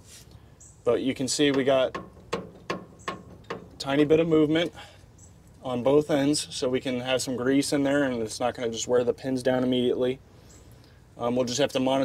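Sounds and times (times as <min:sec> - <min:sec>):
mounting pins clicking: 0:01.4 - 0:03.9.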